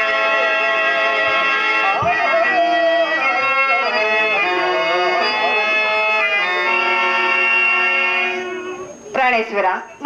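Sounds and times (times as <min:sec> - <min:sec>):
harmonium sustained chord: 0:00.0 - 0:08.9.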